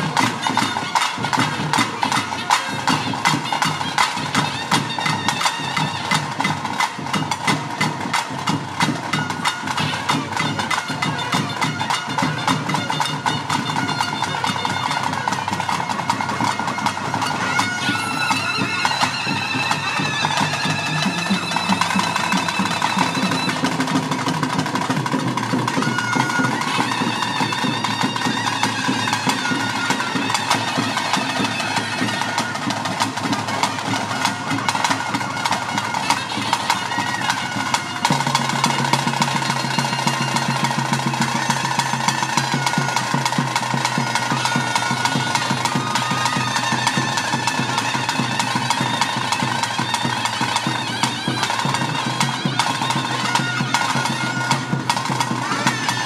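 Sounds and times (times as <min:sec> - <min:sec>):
shrill reed pipe melody: 0:00.0 - 0:56.0.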